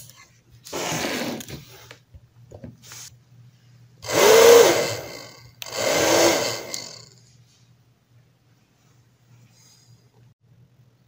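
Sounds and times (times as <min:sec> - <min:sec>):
electric blower motor whirring: 0:04.0 - 0:07.2.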